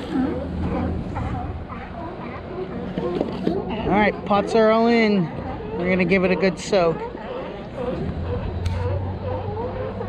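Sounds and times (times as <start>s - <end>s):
steady low rumble: 0.0s - 2.9s.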